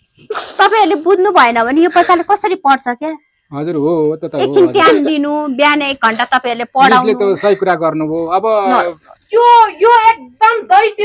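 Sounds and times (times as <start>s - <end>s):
sharp hissing intake of breath: 0.0s - 1.4s, 6.0s - 6.8s, 8.7s - 9.2s.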